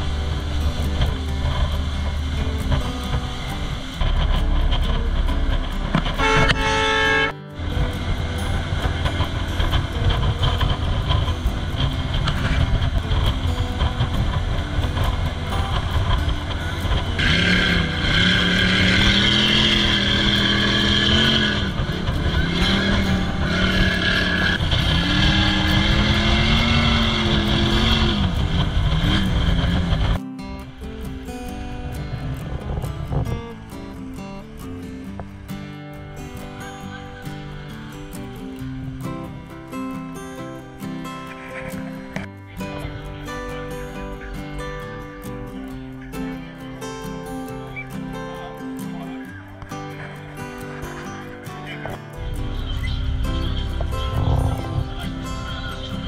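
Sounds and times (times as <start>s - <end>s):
motorboat engine: 0.0s - 47.0s, 49.4s - 56.0s
water noise: 0.0s - 56.0s
wind: 0.0s - 56.0s.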